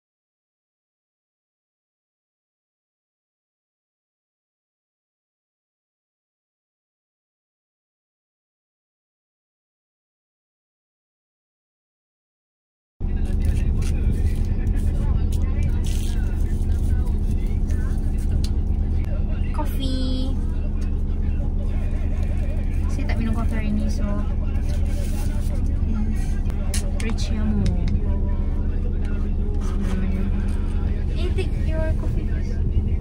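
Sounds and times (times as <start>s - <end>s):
car interior drone: 13.0s - 33.0s
faint indistinct voices: 13.0s - 33.0s.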